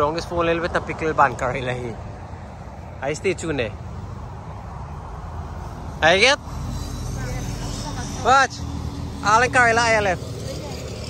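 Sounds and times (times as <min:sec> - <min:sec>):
highway traffic rumble: 0:00.0 - 0:11.0.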